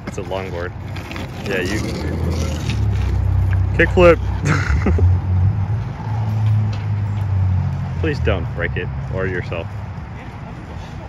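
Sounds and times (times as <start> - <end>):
skateboard wheels rolling on asphalt: 0.0 - 11.0.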